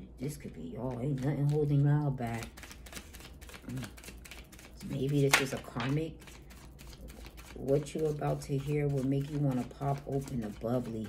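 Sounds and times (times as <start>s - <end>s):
cards being shuffled: 0.4s - 11.0s.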